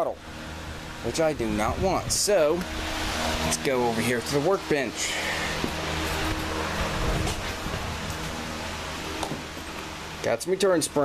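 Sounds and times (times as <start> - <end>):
fan humming with hiss: 0.0 - 11.0.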